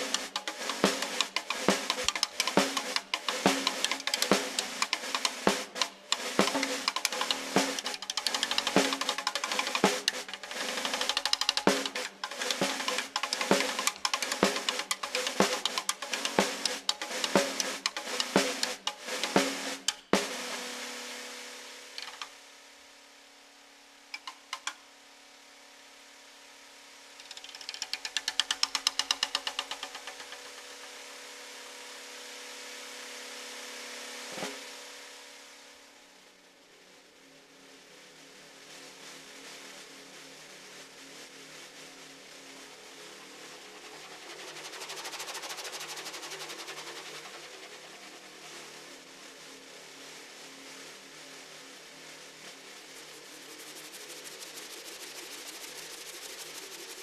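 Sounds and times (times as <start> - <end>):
rapid pulses: 0.0 - 22.2
snare drum fast strikes: 0.0 - 22.3, 24.2 - 24.8, 27.3 - 31.0, 34.3 - 34.8, 44.5 - 47.3.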